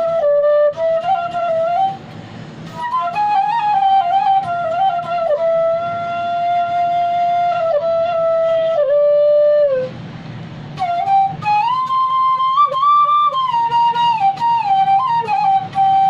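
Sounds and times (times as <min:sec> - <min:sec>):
bamboo flute melody: 0:00.0 - 0:10.1, 0:10.7 - 0:16.0.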